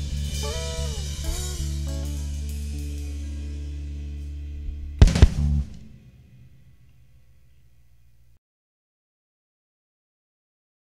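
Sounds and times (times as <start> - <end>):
band final chord with cymbal: 0.0 - 6.6.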